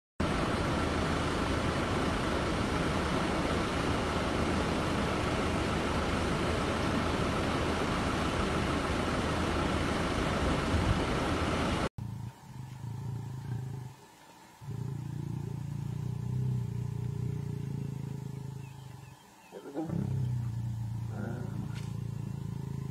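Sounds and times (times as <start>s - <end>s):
loud rushing outdoor noise: 0.2s - 11.9s
low hum: 0.2s - 22.9s.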